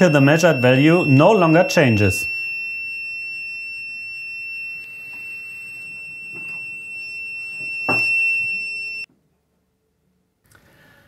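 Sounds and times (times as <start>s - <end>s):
high-pitched alarm tone: 0.0s - 9.1s.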